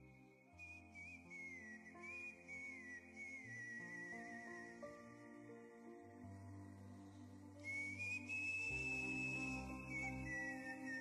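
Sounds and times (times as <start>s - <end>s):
high whistle-like melody: 0.0s - 6.6s, 7.5s - 11.0s
soft sustained chords: 4.3s - 11.0s.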